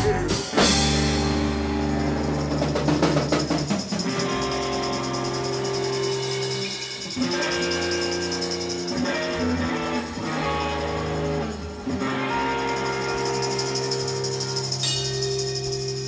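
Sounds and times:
rock band playing: 0.0 - 16.0
cymbal shimmer: 3.3 - 16.0.

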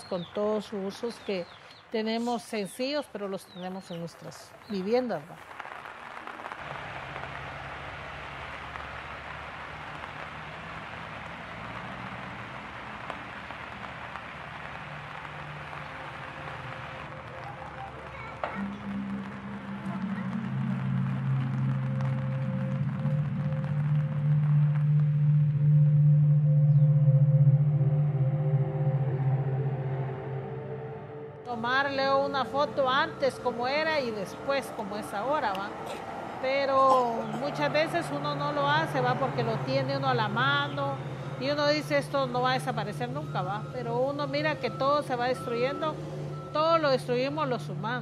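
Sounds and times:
steady rain hiss: 0.0 - 26.4, 31.5 - 48.0
music of long low notes: 5.9 - 48.0.

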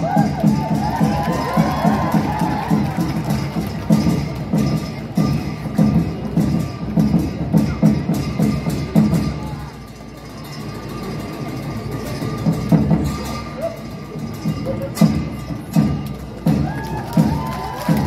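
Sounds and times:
drum beat: 0.0 - 9.7, 14.4 - 18.0
cymbals: 0.0 - 18.0.

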